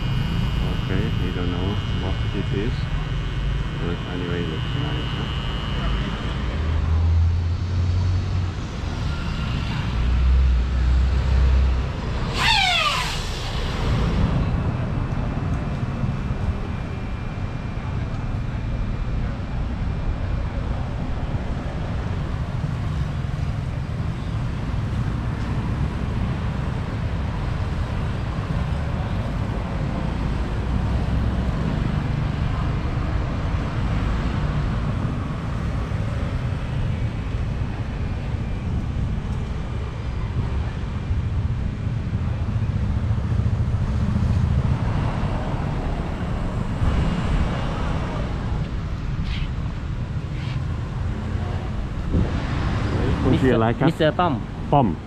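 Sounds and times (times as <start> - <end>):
passing traffic rumble: 0.0 - 55.0.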